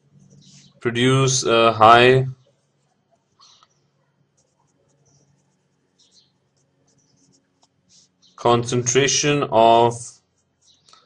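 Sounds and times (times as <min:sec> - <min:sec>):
pen scratching on paper: 0:04.3 - 0:08.2.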